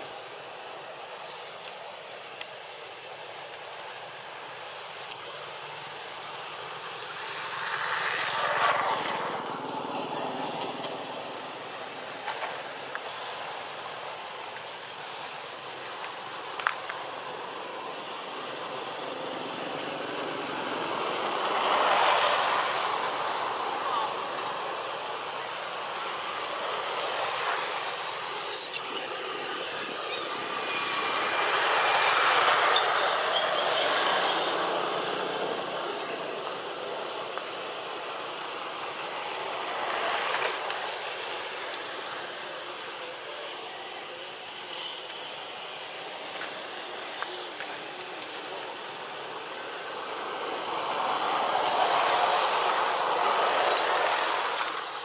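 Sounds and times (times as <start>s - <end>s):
outdoor background noise: 0.0s - 55.0s.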